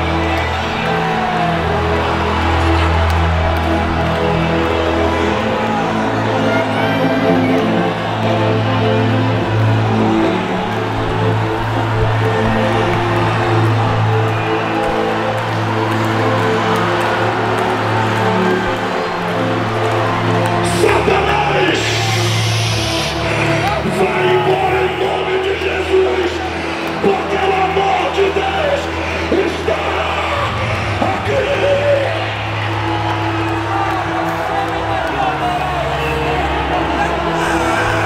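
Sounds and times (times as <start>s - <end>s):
keyboard sustained chords: 0.0s - 38.0s
people cheering: 0.0s - 38.0s.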